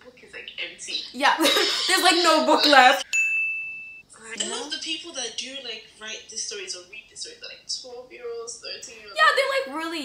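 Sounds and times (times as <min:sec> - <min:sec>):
bell-like ding: 0:03.0 - 0:04.1.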